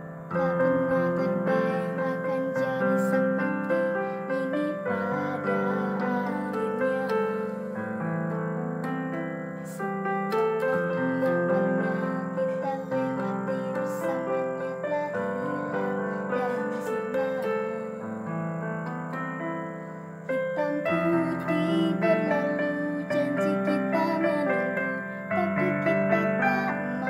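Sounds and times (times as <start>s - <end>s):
electronic keyboard playing pop song: 0.0s - 27.0s.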